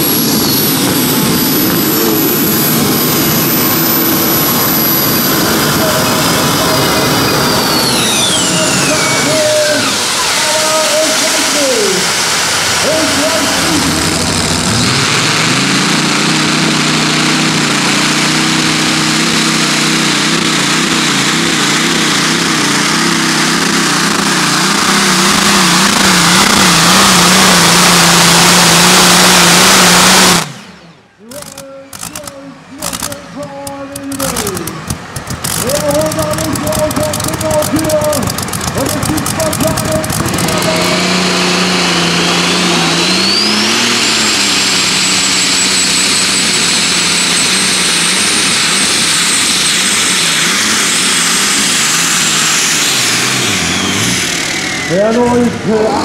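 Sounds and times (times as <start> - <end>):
high whine rising in pitch: 0.0 - 56.0
tractor engine at full power: 0.0 - 56.0
uneven engine sounds: 0.0 - 56.0.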